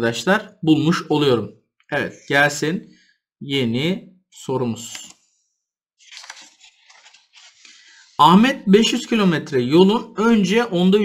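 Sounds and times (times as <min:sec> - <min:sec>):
paper rustling and crinkling: 0:06.0 - 0:08.2.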